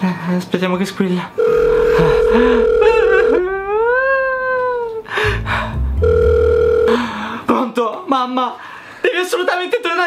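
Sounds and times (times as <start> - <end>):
telephone ringback tone: 1.4 - 3.6, 6.0 - 7.0.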